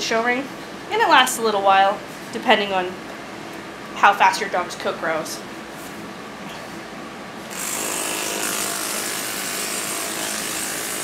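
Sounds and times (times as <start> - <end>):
electric clippers buzzing: 7.5 - 11.0.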